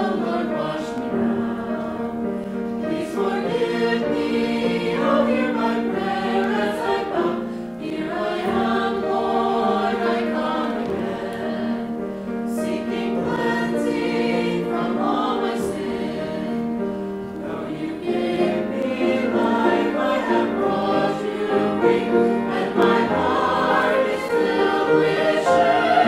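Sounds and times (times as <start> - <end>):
choir singing a hymn: 0.0 - 26.0.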